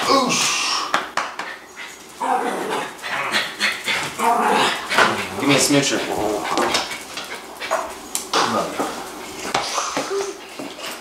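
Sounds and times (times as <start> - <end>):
indistinct voices: 2.2 - 10.4.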